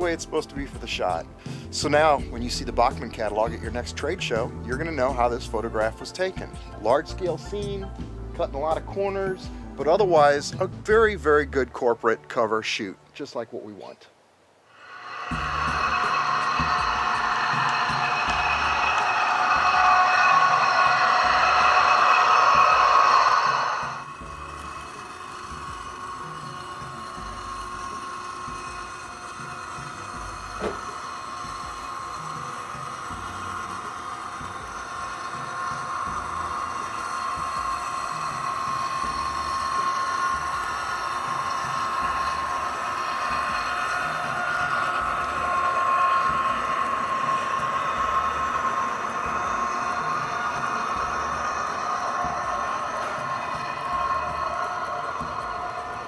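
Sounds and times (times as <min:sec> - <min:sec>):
model train running past: 0:00.0 - 0:11.0, 0:14.7 - 0:56.0
held tones: 0:14.7 - 0:56.0.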